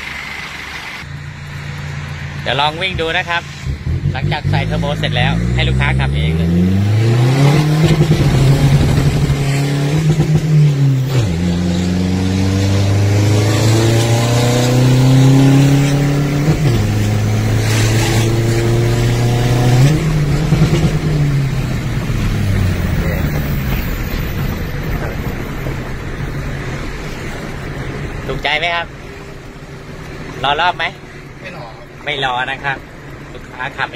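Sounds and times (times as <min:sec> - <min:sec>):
diesel engine accelerating: 0:00.0 - 0:33.9.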